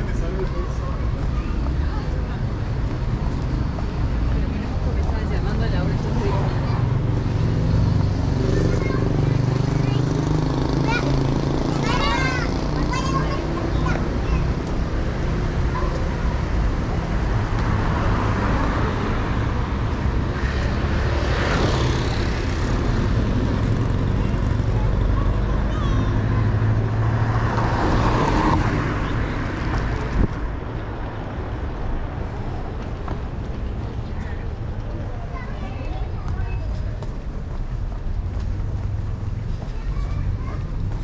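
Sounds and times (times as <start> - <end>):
car engines humming: 0.0 - 41.0
vehicles passing close: 0.0 - 41.0.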